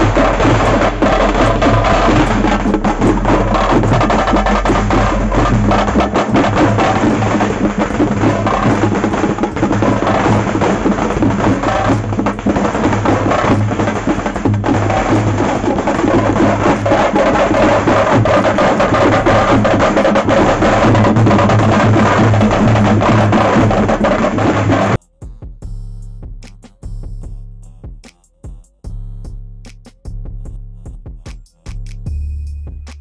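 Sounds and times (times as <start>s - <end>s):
fast drumming drum band: 0.0s - 32.1s.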